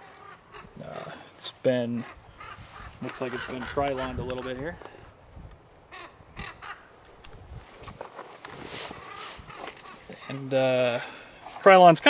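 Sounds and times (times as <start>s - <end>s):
crow hoarse calls: 0.0s - 5.2s, 5.9s - 7.0s, 8.7s - 11.6s.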